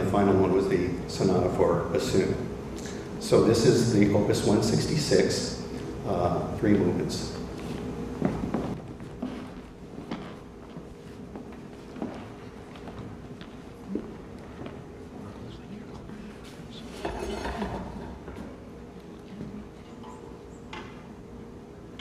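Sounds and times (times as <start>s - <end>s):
faint steady hum: 0.0s - 22.0s
footsteps on wooden stage floor: 7.4s - 16.6s.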